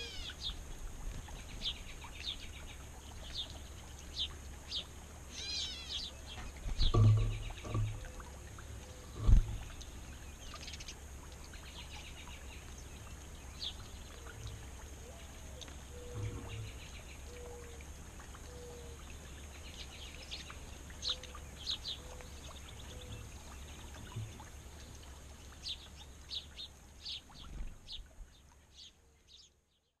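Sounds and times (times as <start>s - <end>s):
low background rumble: 0.0s - 28.6s
songbirds chirping: 0.0s - 30.0s.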